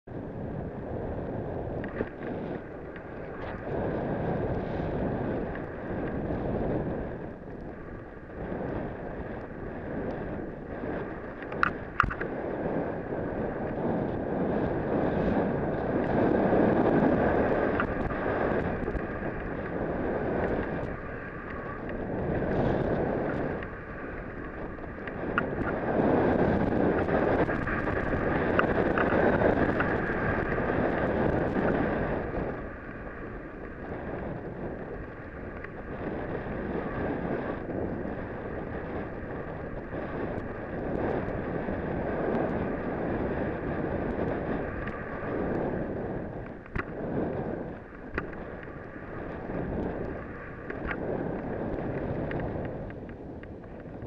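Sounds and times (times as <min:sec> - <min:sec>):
wind rushing over microphone: 0:00.0 - 0:54.0
skis sliding through powder snow: 0:00.9 - 0:53.4.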